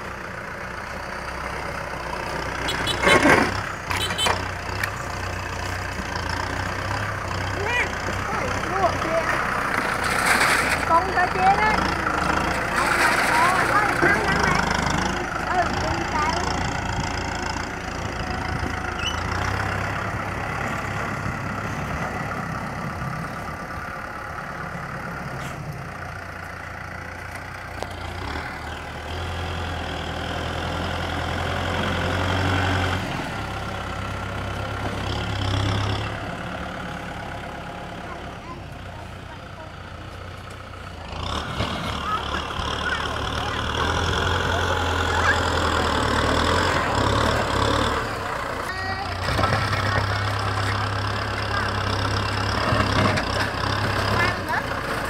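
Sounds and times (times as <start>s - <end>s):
tractor diesel engine working: 0.0s - 55.0s
dozer blade pushing soil: 0.8s - 23.6s, 25.1s - 55.0s.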